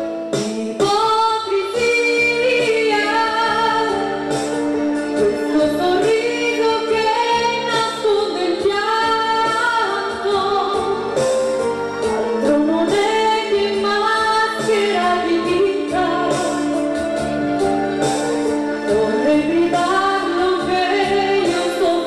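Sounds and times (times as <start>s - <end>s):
instrumental accompaniment: 0.0s - 22.0s
woman singing into microphone: 0.0s - 22.0s.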